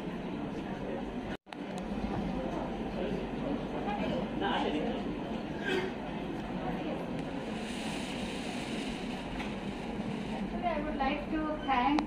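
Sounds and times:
rumbling hall room noise: 0.0s - 12.0s.

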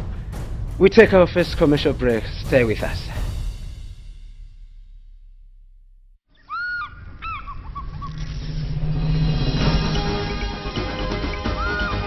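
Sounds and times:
low rumble: 0.0s - 6.2s, 7.0s - 11.0s
eagle screaming: 6.4s - 8.5s, 11.4s - 12.0s.

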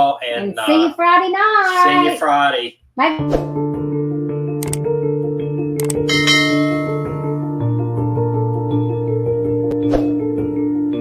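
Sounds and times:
sustained music chords: 3.6s - 11.0s
bright bell-like note: 6.1s - 7.5s.

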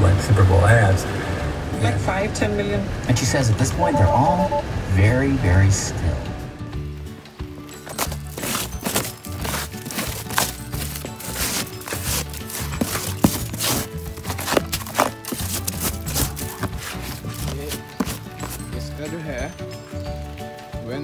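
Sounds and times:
crunching scrapes of ice: 7.7s - 18.7s.

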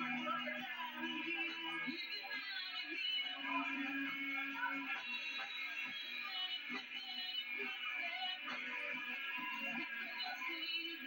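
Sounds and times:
person singing: 0.0s - 11.0s.

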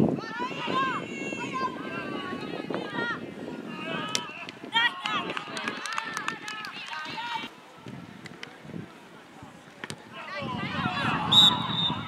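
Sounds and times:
young women shouting: 0.2s - 3.2s.

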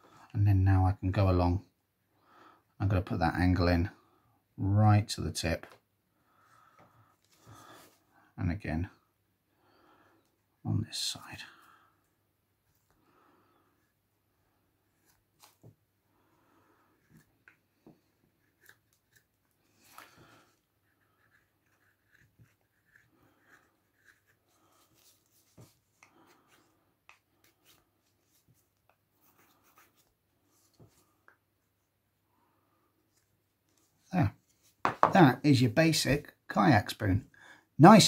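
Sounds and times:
knife carving wood: 17.0s - 28.4s.

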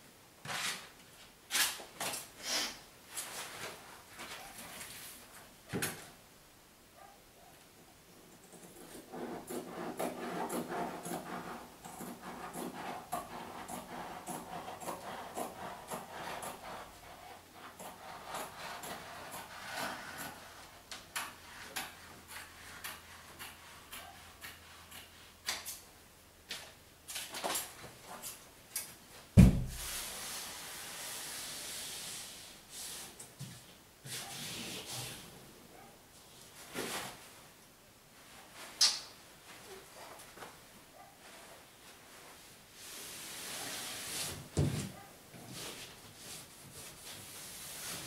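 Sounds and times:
wallpaper rubbed onto wall: 8.8s - 25.4s, 29.6s - 35.4s, 41.2s - 48.0s
loud thump: 29.4s - 29.8s.

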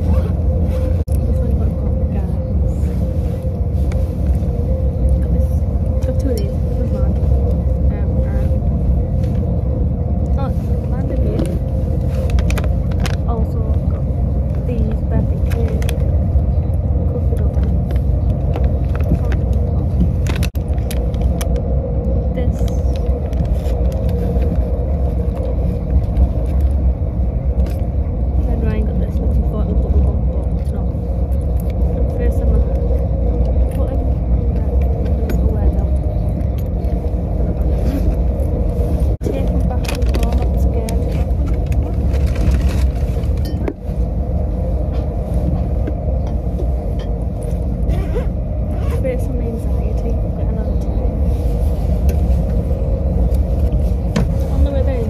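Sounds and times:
constant hum: 0.0s - 55.0s
moving train rumble: 0.0s - 55.0s.

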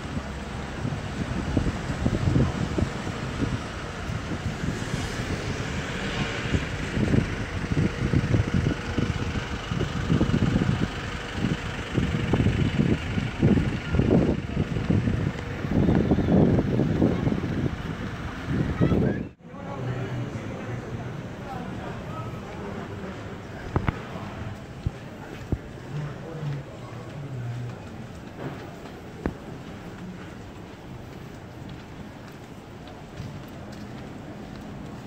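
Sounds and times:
wind buffeting microphone: 0.0s - 19.4s, 21.5s - 35.0s.

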